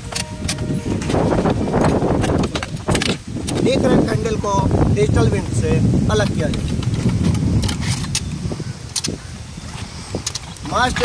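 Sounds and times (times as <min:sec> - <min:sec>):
metal parts clicking and clinking: 0:10.2 - 0:11.0.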